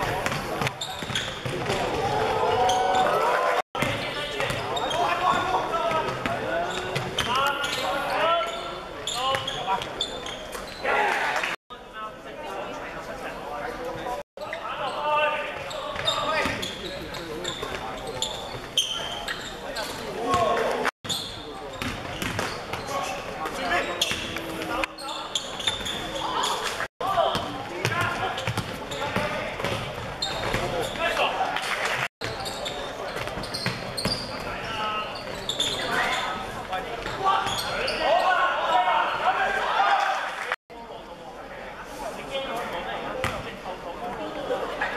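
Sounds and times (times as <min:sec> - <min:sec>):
people shouting: 0:01.9 - 0:03.6.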